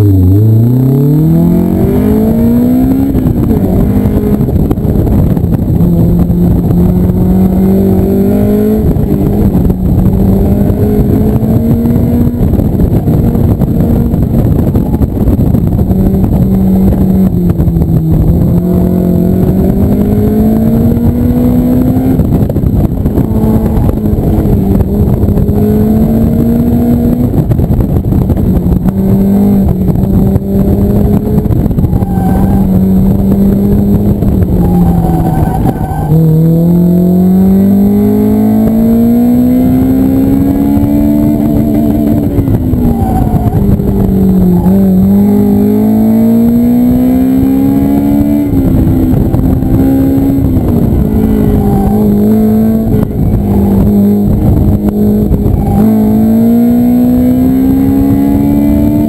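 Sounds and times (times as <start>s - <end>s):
high-revving car engine: 0.0s - 59.0s
rush of air and road noise: 0.0s - 59.0s.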